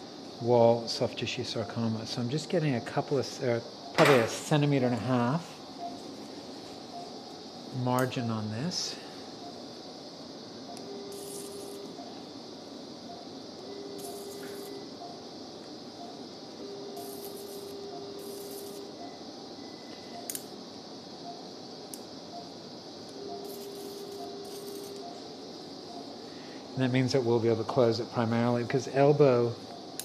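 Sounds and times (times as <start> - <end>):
electrosurgical activation tone: 0.0 - 30.0
faint high cutting hiss: 0.0 - 30.0
steady background hiss: 0.0 - 30.0.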